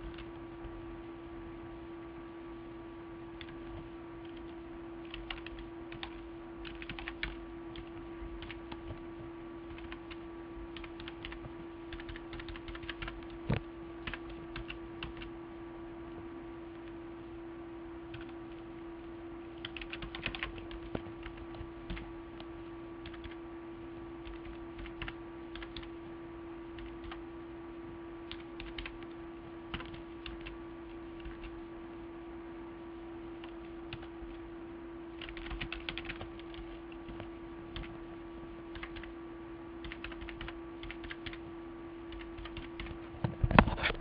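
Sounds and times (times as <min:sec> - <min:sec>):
low electrical hum: 0:00.0 - 0:44.0
typing on computer keyboard: 0:04.2 - 0:08.9, 0:09.7 - 0:10.2, 0:10.8 - 0:13.4, 0:14.0 - 0:15.3, 0:18.1 - 0:18.4, 0:19.6 - 0:22.1, 0:23.0 - 0:23.4, 0:24.2 - 0:25.9, 0:26.8 - 0:27.2, 0:28.3 - 0:29.1, 0:29.7 - 0:30.6, 0:35.2 - 0:37.9, 0:38.7 - 0:39.1, 0:39.8 - 0:41.4, 0:42.1 - 0:43.0.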